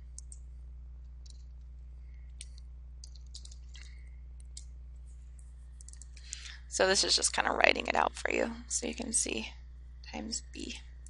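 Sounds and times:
low hum: 0.0 - 11.0
computer keys and mouse clicking: 0.2 - 0.4, 1.1 - 1.7, 2.3 - 4.7, 5.8 - 6.4.

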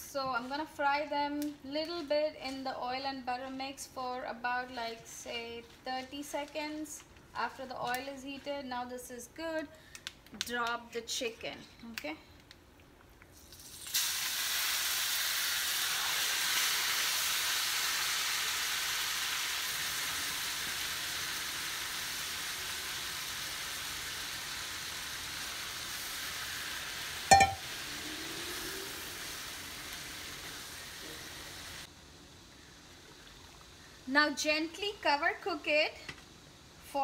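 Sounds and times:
chicken sizzling in hot oil: 13.4 - 31.9
glass lid placed on pan: 27.3 - 27.6.

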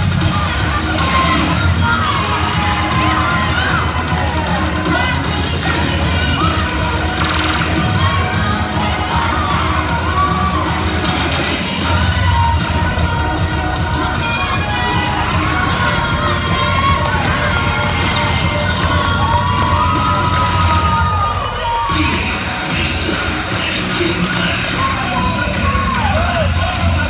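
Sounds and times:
crowd cheering and shouting: 0.0 - 27.0
routine music: 0.0 - 27.0.

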